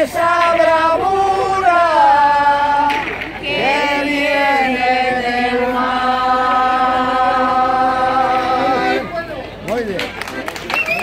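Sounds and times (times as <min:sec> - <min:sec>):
choir singing unaccompanied: 0:00.0 - 0:09.1.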